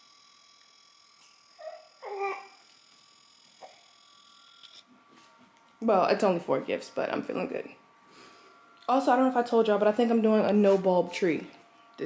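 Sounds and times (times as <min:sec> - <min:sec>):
infant cooing: 0:01.6 - 0:02.6.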